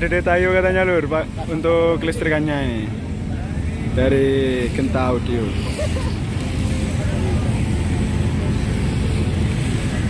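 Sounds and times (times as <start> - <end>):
generator engine running: 0.0 - 10.0.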